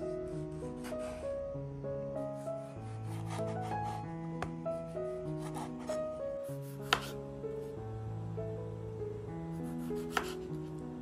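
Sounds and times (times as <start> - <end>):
background music: 0.0 - 11.0
knife slicing tomato: 3.0 - 4.0, 6.6 - 7.2, 9.6 - 10.4.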